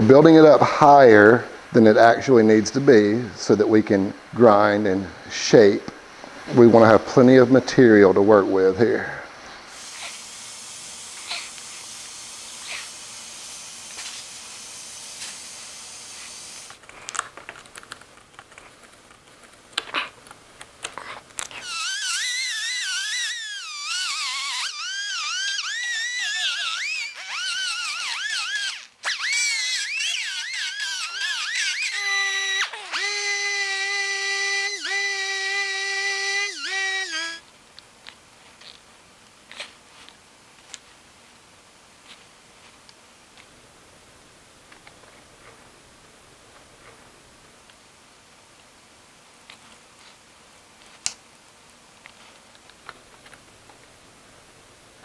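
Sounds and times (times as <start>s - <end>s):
hot-air welder hissing: 9.0s - 16.8s, 21.6s - 37.4s
grinder whining on plastic: 21.6s - 37.4s.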